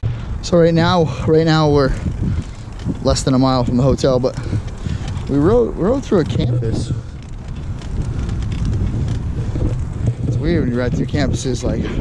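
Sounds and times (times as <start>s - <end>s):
low rumble of trike ride: 0.0s - 12.0s
wind buffeting microphone: 0.0s - 12.0s.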